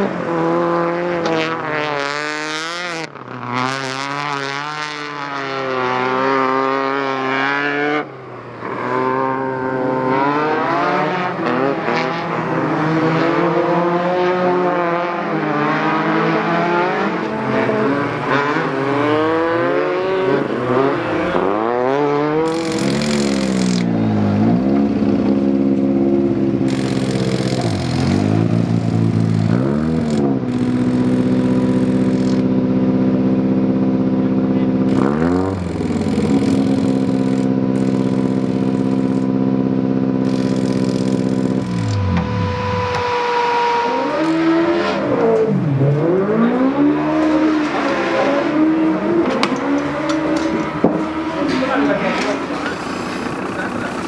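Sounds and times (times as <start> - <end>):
racing car engine revving: 0.0 - 54.0.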